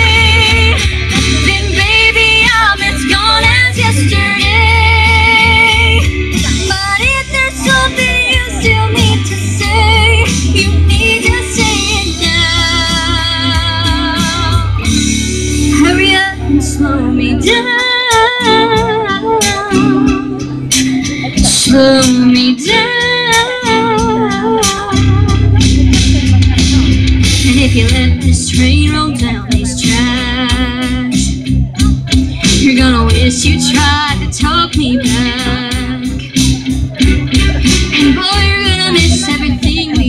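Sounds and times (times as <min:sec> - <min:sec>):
country backing track: 0:00.0 - 0:40.0.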